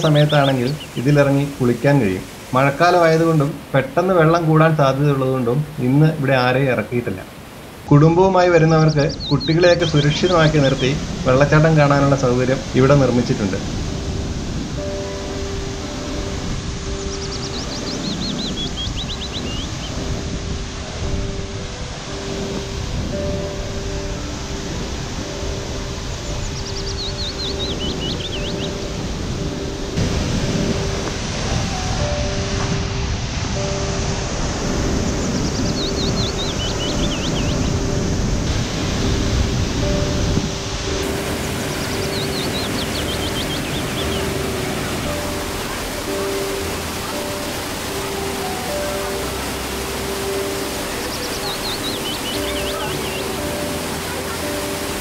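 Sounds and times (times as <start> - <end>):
gentle background music: 0.0 - 55.0
waterfall roaring: 0.0 - 55.0.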